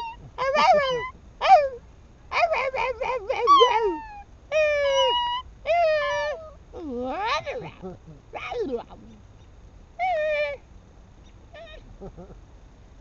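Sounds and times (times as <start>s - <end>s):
dog howling: 0.0s - 6.6s.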